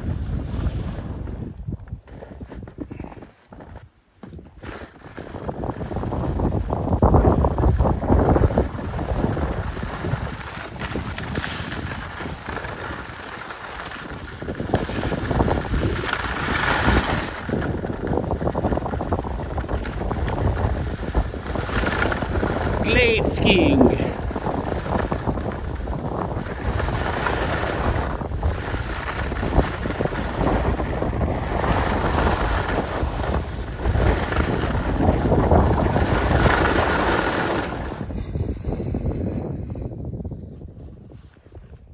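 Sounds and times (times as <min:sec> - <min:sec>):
skis scraping over snow: 0:00.0 - 0:41.8
wind noise on microphone: 0:00.0 - 0:41.9.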